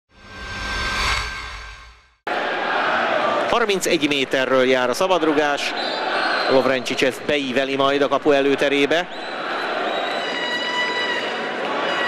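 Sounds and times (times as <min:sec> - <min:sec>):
whoosh with low rumble: 0:00.1 - 0:02.2.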